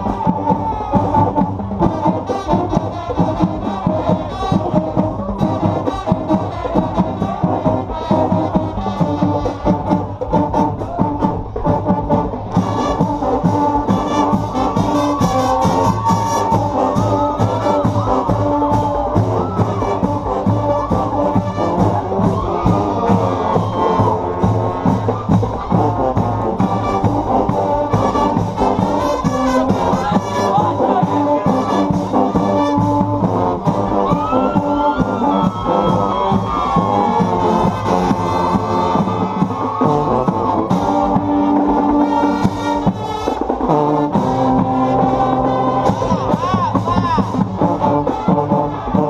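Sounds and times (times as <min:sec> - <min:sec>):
marching band playing: 0:00.0 - 0:49.0.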